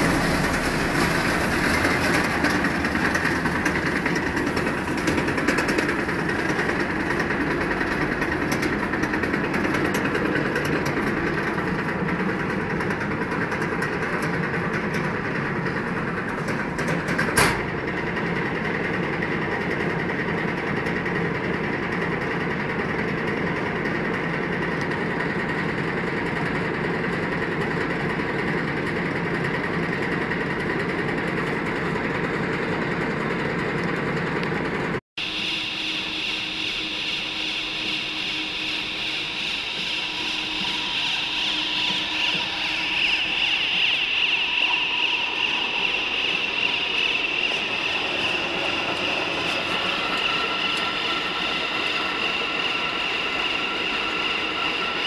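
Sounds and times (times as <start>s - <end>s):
machine humming and hissing: 0.0s - 28.9s, 35.2s - 55.0s.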